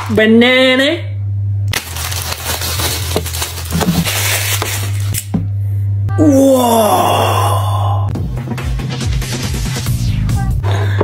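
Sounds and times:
steady low hum: 0.0 - 8.2
plastic bag crinkling: 1.7 - 5.2.

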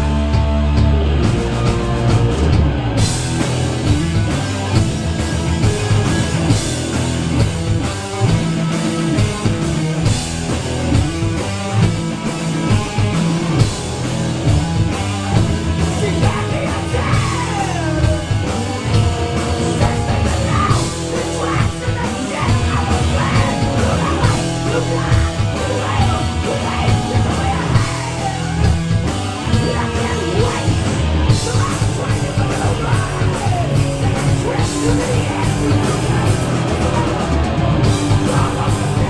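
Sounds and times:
rock band playing live: 0.0 - 39.0.

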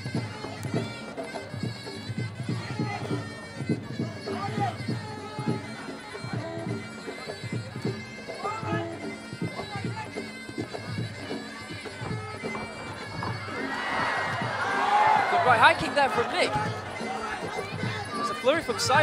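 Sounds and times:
crowd noise: 0.0 - 19.0
reedy oboe melody: 0.0 - 19.0.

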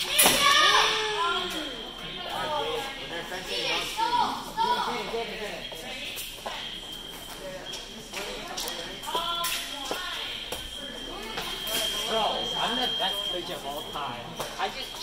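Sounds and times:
voices in large hall: 0.0 - 15.0.

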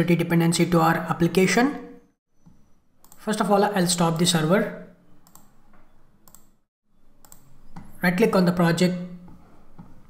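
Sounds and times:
computer mouse clicks: 2.4 - 3.2, 5.2 - 5.6, 6.2 - 6.6, 7.2 - 8.0.

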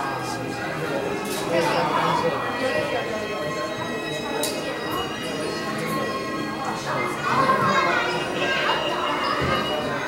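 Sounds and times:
children's voices: 0.0 - 10.0
indistinct chatter of visitors: 0.0 - 10.0.

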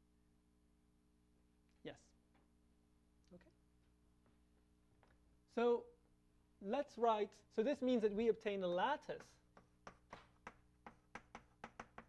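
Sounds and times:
chalk tapping on blackboard: 9.0 - 12.0.

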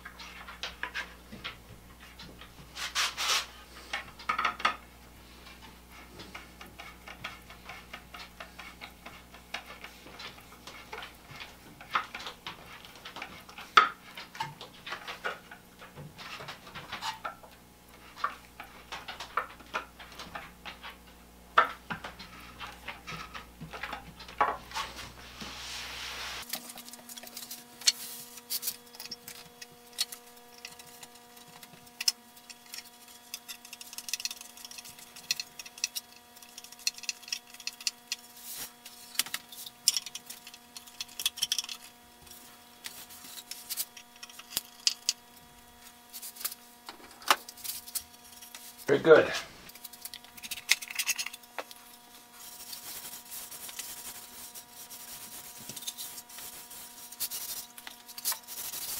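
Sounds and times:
low background hum: 0.0 - 58.9
screwdriver clicking and scraping wood: 6.0 - 15.0, 26.4 - 48.9, 49.7 - 58.9.

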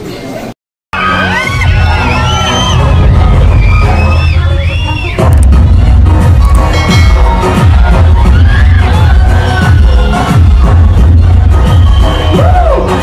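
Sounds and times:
dance music with heavy bass beat: 1.0 - 13.0.

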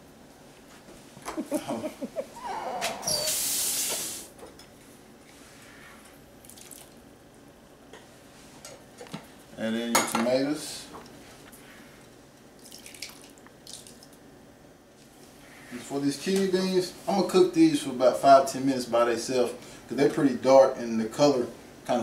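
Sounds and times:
running tap water: 3.1 - 4.2.

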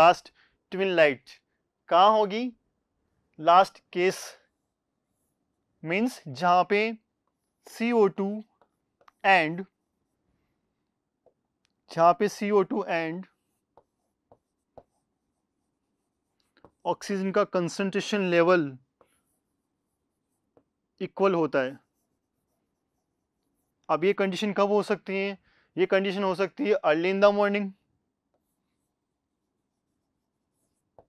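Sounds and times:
man speaking: 0.0 - 2.6, 3.4 - 4.4, 5.8 - 7.0, 7.7 - 8.5, 9.2 - 9.7, 11.9 - 13.3, 16.8 - 18.8, 21.0 - 21.8, 23.9 - 27.8
writing strokes on board: 12.7 - 16.9, 18.8 - 20.9, 21.7 - 23.9, 28.1 - 31.0.

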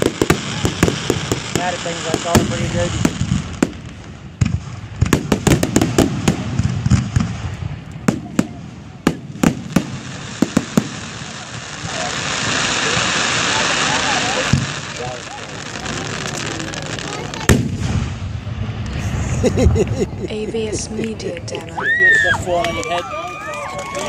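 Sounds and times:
fireworks bursting: 0.0 - 24.0.

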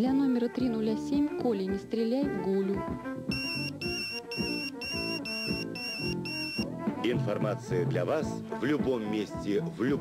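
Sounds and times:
background music: 0.0 - 10.0
pager beeping: 3.3 - 6.7.

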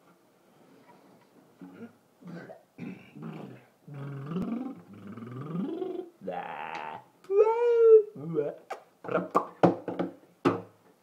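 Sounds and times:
low growly vocalising: 3.1 - 7.1.

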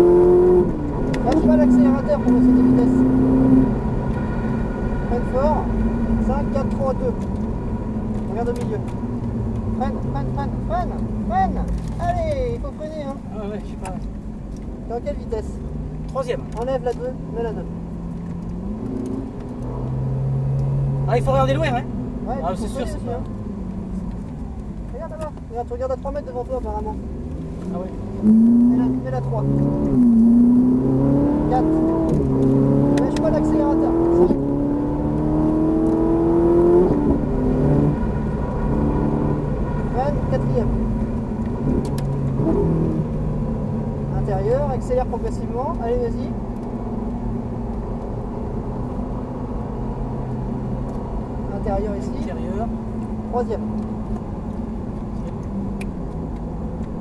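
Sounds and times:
car engine in cabin: 0.0 - 57.0
continuous rumble: 0.0 - 57.0.

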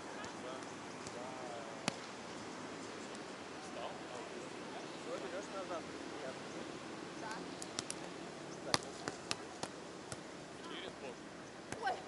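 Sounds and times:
hands slapping volleyball: 0.2 - 1.2, 1.8 - 2.1, 7.6 - 8.1, 8.7 - 10.2, 11.7 - 12.0.

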